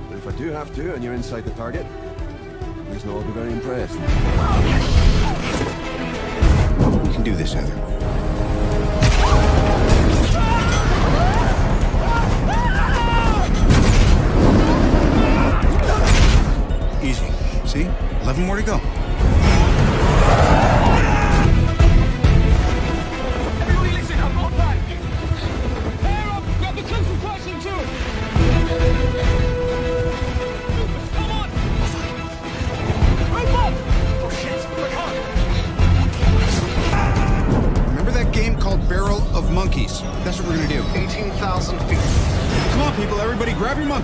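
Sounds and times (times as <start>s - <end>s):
film music: 0.0s - 44.0s
people yelling: 9.0s - 13.7s, 14.5s - 16.2s, 19.1s - 21.6s, 36.8s - 37.7s.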